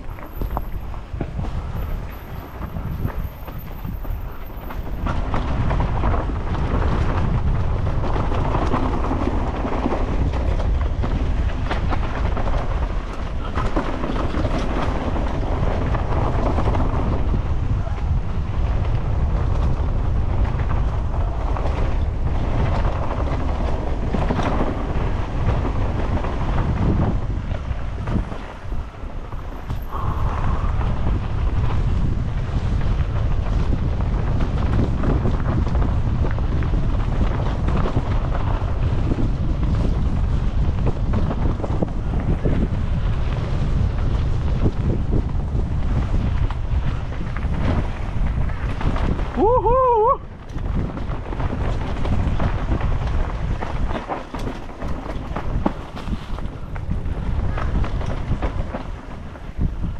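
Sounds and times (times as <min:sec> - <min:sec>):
mountain bike rattling: 0:00.0 - 0:59.9
tyres crunching over ground: 0:00.0 - 0:59.9
wind on microphone: 0:00.0 - 0:59.9.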